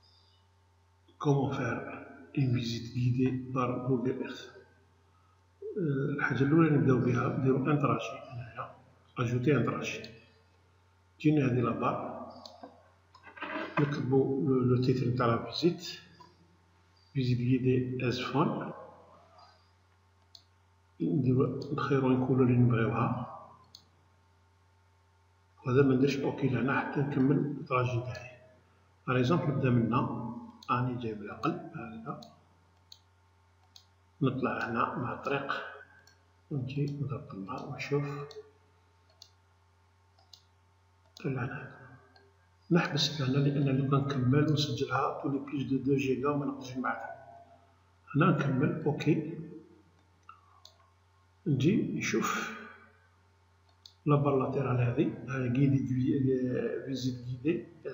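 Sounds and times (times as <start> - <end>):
faint low hum: 0.0 - 57.9
computer mouse clicking: 32.1 - 33.9, 39.1 - 39.4, 40.1 - 41.2, 53.6 - 54.0
computer mouse click: 39.1 - 39.4, 40.2 - 41.2.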